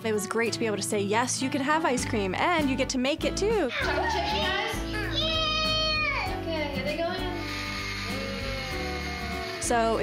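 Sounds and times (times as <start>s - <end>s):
background music: 0.0s - 10.0s
child's high wordless call: 5.0s - 6.4s.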